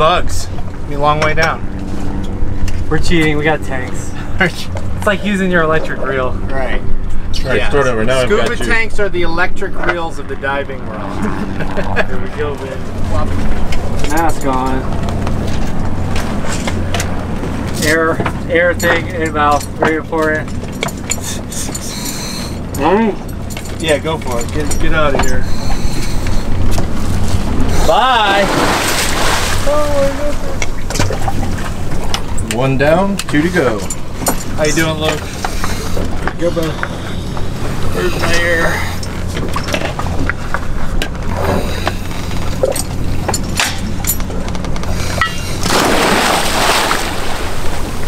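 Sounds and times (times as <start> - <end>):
boat engine idling: 0.0 - 48.0
steady low hum: 0.0 - 48.0
loud splash into water: 28.2 - 29.8, 45.6 - 47.9.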